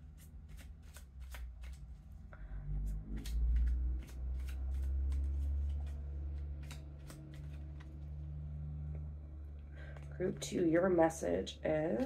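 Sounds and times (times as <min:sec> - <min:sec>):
cards being shuffled: 0:00.0 - 0:08.5.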